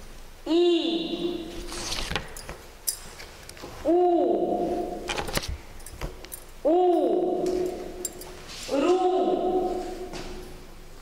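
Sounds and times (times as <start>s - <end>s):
woman holding long oo vowel: 0.4s - 1.5s.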